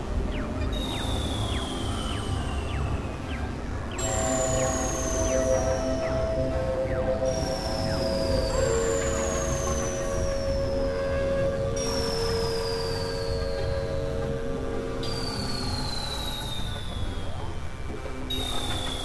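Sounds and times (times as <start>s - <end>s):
synthesizer drone music: 0.1s - 12.4s
high gliding whistling tone: 0.4s - 14.1s.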